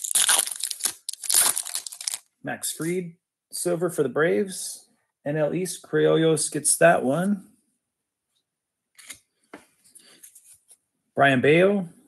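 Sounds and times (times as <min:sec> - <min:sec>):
plastic wrapper tearing and crinkling: 0:00.0 - 0:02.3.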